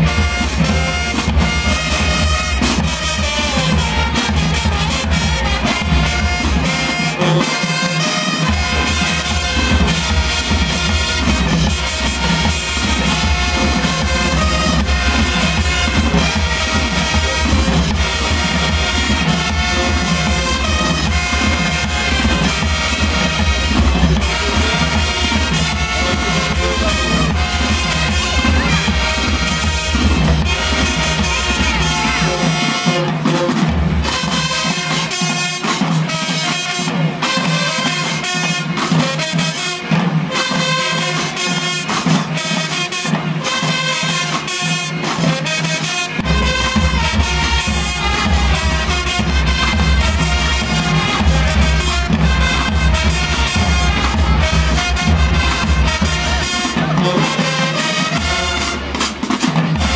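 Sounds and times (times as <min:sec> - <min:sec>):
brass horns: 0:00.0 - 0:59.9
drums: 0:00.0 - 0:59.9
marching band playing: 0:00.0 - 0:59.9.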